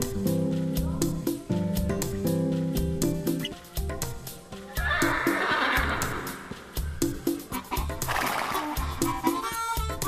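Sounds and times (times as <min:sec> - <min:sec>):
music with steady beat: 0:00.0 - 0:10.0
horse whinnying: 0:04.8 - 0:06.5.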